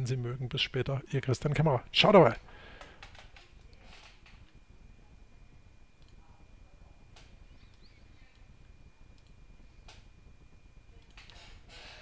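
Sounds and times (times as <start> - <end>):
low hum: 0.0 - 11.7
faint high-pitched whine: 0.0 - 12.0.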